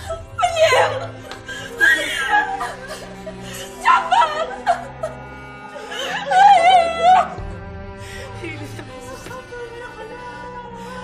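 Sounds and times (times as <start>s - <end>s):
low music bed: 0.0s - 11.0s.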